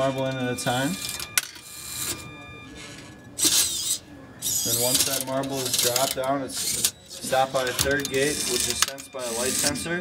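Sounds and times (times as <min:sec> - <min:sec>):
faint high motor whine: 0:00.0 - 0:10.0.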